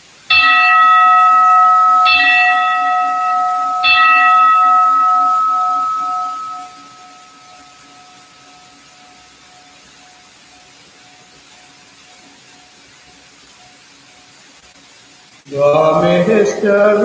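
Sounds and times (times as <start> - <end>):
altar bell ringing: 0.3 - 10.7.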